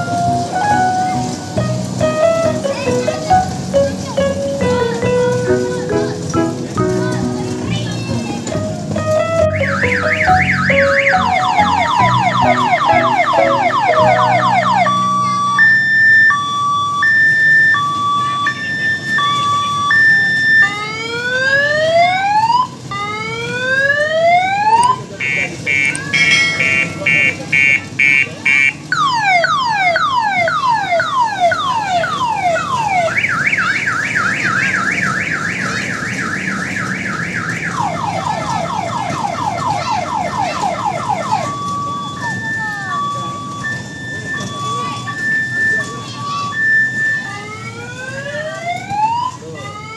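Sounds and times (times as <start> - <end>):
car alarm siren: 9.3 - 49.9.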